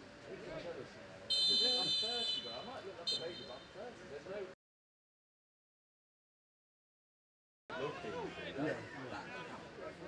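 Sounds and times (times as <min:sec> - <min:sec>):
referee's whistle blasts: 0:01.3 - 0:03.5.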